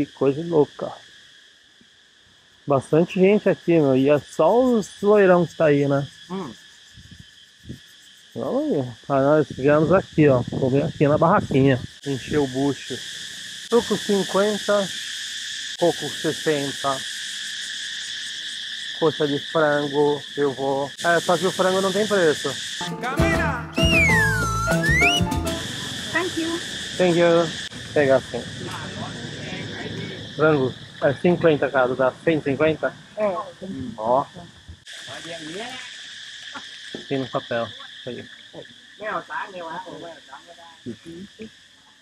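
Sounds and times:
insects chorus drone: 0.0 - 42.0.

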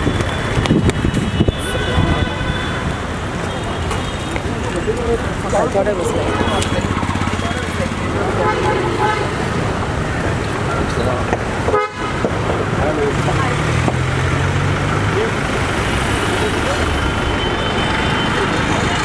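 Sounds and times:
car horns tooting: 0.0 - 9.8, 11.6 - 12.4
street traffic: 0.0 - 19.0
people talking: 3.4 - 11.4, 12.6 - 19.0.

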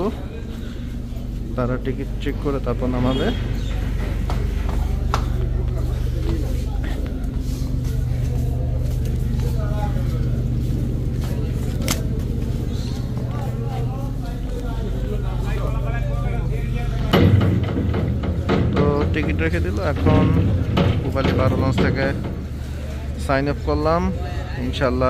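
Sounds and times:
boat engine low hum: 0.0 - 25.0
people talking: 0.0 - 25.0
handling noise: 0.9 - 23.2.

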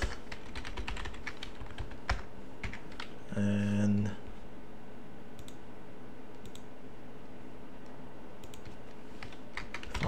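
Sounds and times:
steady low background noise: 0.0 - 10.0
faint computer clicks: 7.8 - 8.8.

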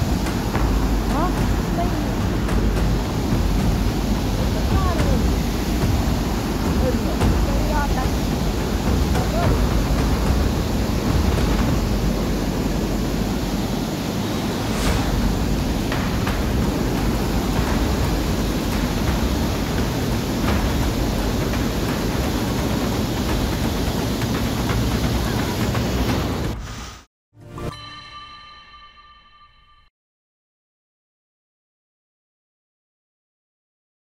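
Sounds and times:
floodwater rushing: 0.0 - 26.6.

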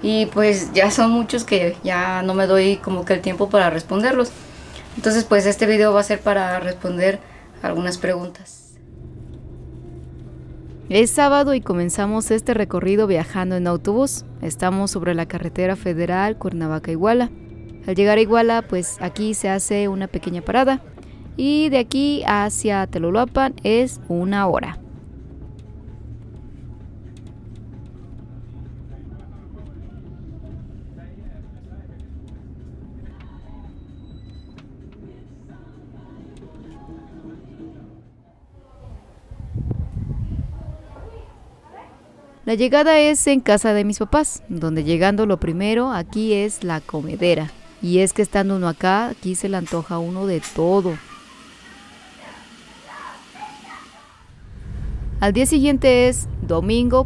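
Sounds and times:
bus engine rumble: 0.0 - 41.9, 54.3 - 57.0
low rumble: 8.6 - 19.1, 37.2 - 41.4, 54.3 - 57.0
faint indistinct voices: 35.0 - 42.5.

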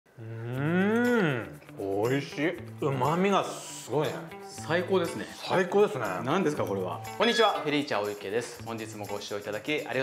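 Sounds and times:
man humming mmm of delight: 0.2 - 1.6.

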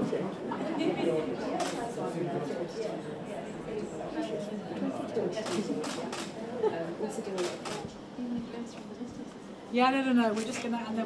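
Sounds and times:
indistinct voices talking quietly: 0.0 - 11.0.

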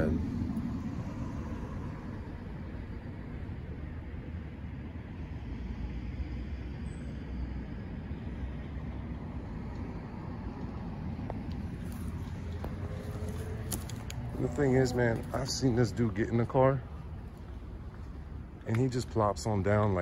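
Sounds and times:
low background rumble: 0.0 - 6.7, 7.3 - 20.0.

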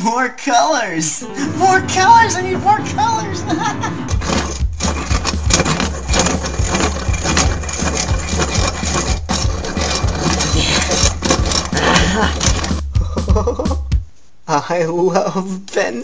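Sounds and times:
pencil sharpener grinding: 4.1 - 12.8.

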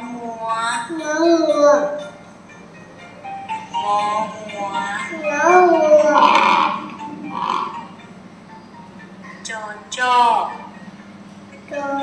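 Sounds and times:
animal call through phone speaker: 3.8 - 7.9.

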